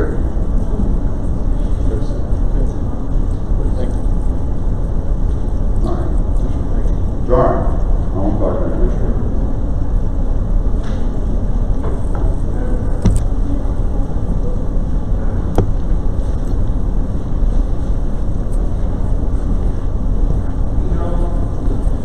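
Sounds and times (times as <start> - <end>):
auditorium room noise rumble: 0.0 - 22.0
faint indistinct activity: 0.0 - 22.0.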